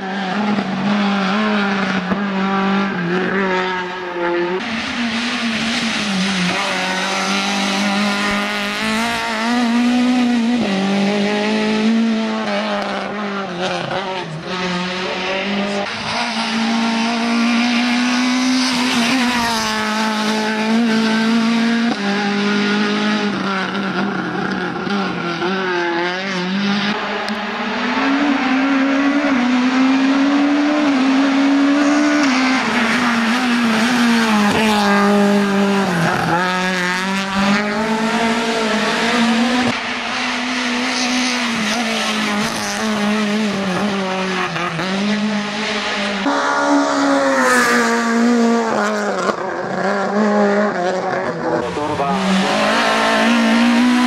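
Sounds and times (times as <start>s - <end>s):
rally car engine revving: 0.0s - 54.0s.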